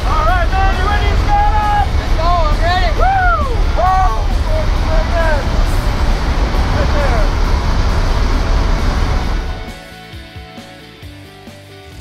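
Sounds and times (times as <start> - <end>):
turboprop engine: 0.0 - 9.9
wind roaring: 0.0 - 9.9
background music: 0.0 - 12.0
person shouting: 2.8 - 4.2.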